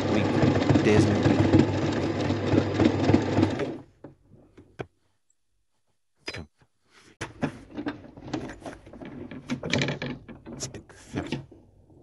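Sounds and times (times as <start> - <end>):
sewing machine stitching: 0.0 - 3.9.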